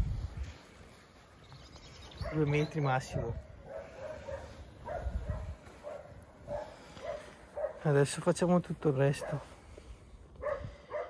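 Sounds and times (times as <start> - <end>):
dog barking faintly: 3.3 - 8.0, 9.1 - 9.6, 10.4 - 11.0.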